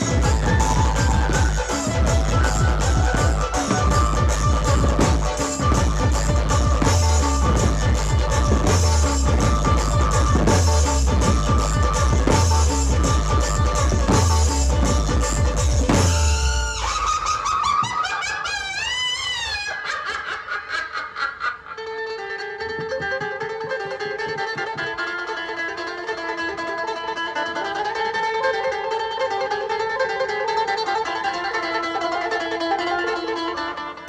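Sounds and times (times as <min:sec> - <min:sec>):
drums and bass: 0:00.0 - 0:17.1
tremolo-picked electric banjo: 0:00.0 - 0:17.8, 0:21.6 - 0:34.0.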